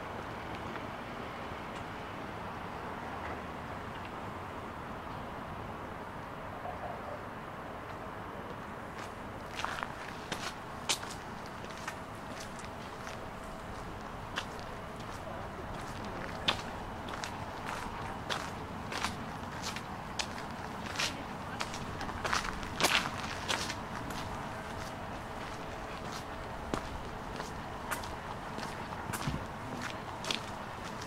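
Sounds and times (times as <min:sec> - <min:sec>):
outdoor background noise: 0:00.0 - 0:31.0
footsteps on stone paving: 0:09.0 - 0:31.0.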